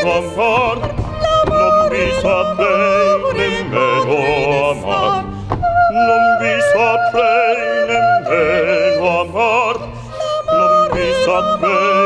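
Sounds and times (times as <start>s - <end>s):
woman singing opera with vibrato: 0.0s - 12.0s.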